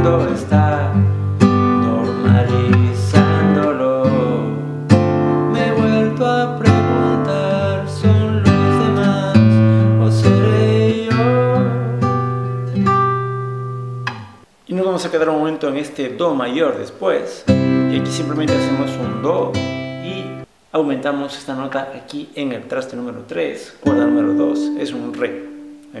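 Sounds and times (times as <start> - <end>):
classical guitar strumming chords: 0.0 - 14.4, 17.5 - 20.5, 23.8 - 26.0.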